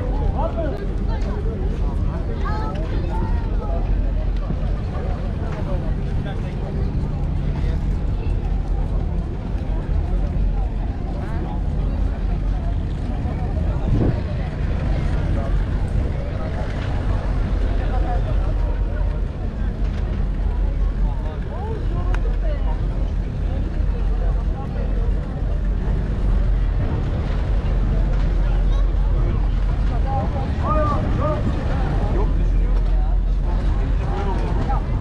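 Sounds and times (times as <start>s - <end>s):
ferry engines humming: 0.0s - 35.0s
people talking: 0.0s - 35.0s.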